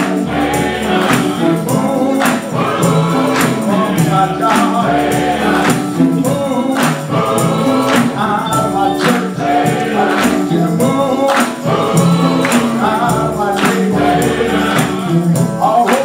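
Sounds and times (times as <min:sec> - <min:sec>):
bass line: 0:00.0 - 0:15.5
men's choir singing: 0:00.0 - 0:16.0
percussion beat: 0:00.0 - 0:16.0.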